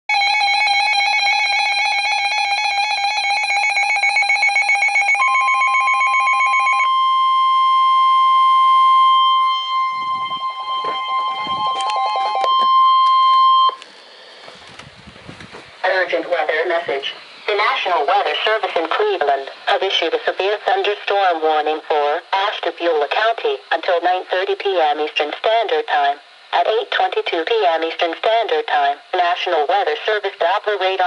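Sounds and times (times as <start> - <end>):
warbling alarm beep: 0.1 - 13.8
steady warning alarm tone: 0.1 - 14.7.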